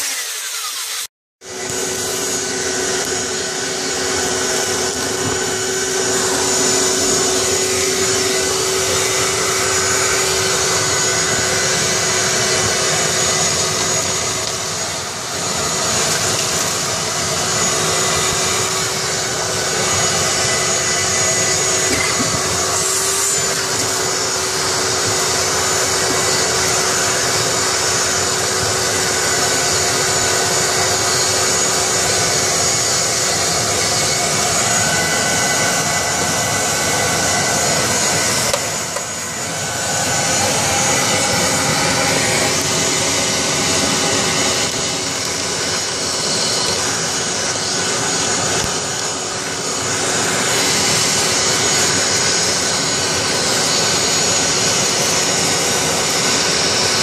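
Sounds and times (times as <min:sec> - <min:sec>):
shop vacuum running: 0:00.0 - 0:57.0.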